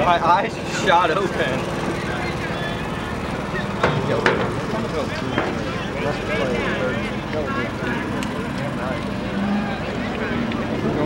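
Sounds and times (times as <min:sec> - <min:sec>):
outdoor crowd chatter: 0:00.0 - 0:11.0.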